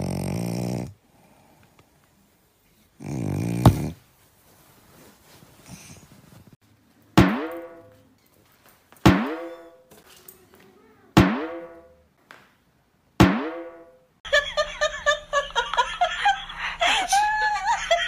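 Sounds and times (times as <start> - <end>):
pitched drum-like hits: 7.2 - 7.9, 9.1 - 9.7, 11.2 - 11.9, 13.2 - 13.9.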